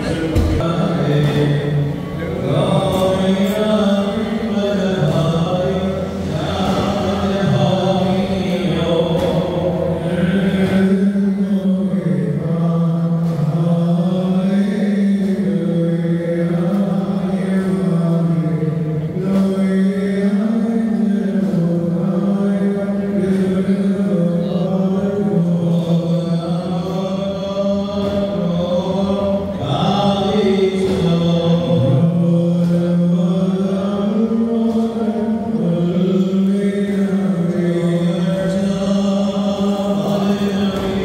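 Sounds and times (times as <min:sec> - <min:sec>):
men chanting a hymn: 0:00.0 - 0:41.0.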